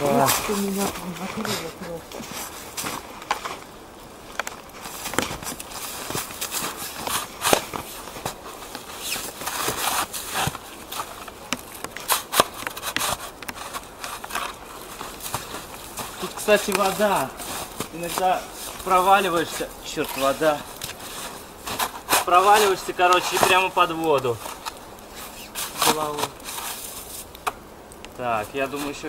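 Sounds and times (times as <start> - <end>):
snow shovel digging: 0.0 - 3.6, 4.8 - 27.3
boots tramping in snow: 4.7 - 27.2.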